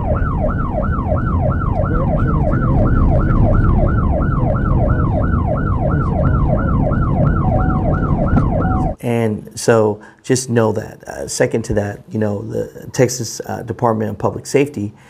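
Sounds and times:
police siren yelping: 0:00.0 - 0:09.0
road and engine rumble: 0:00.0 - 0:09.0
steady tone: 0:00.0 - 0:09.0.

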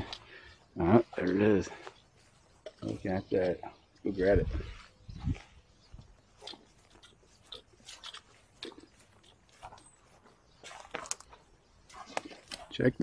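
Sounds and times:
footsteps through grass and pine needles: 0:00.9 - 0:03.5, 0:04.6 - 0:12.8
pine branches rustling: 0:04.6 - 0:12.8.

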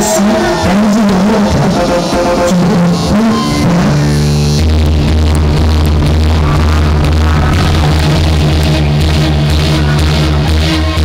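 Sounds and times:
electronic dance music: 0:00.0 - 0:11.0
heavy steady bass line: 0:00.0 - 0:11.0.

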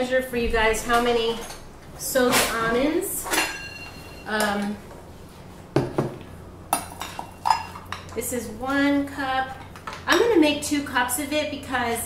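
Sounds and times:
cup clinking against bowl: 0:03.3 - 0:04.3, 0:06.7 - 0:08.2.

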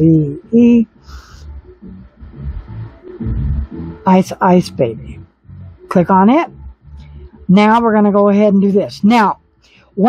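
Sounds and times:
people talking: 0:00.0 - 0:00.9, 0:03.2 - 0:05.2, 0:05.9 - 0:06.6, 0:07.5 - 0:09.4
karaoke music with low beat: 0:00.0 - 0:10.0.

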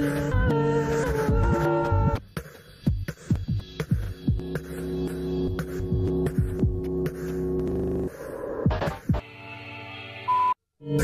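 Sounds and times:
electronic kick drum hits: 0:02.9 - 0:09.2.

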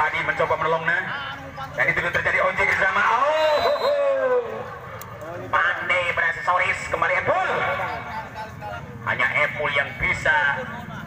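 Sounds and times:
man speaking: 0:05.3 - 0:11.0.

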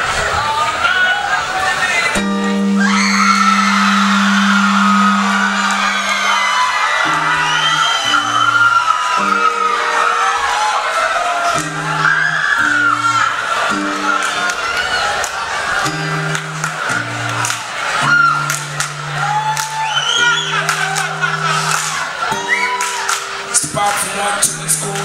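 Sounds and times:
audience cheering and whooping: 0:00.0 - 0:24.9
short low bass notes: 0:02.2 - 0:08.6
live band playing: 0:02.2 - 0:25.0.

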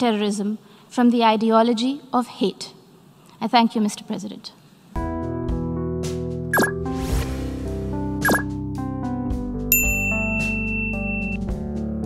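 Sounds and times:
outro music with held notes: 0:05.0 - 0:12.0
bright bell ding: 0:09.7 - 0:11.4.

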